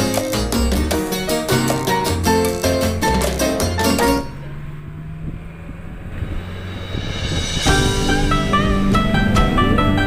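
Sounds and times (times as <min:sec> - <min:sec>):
vehicle hum and road noise: 0:00.0 - 0:10.0.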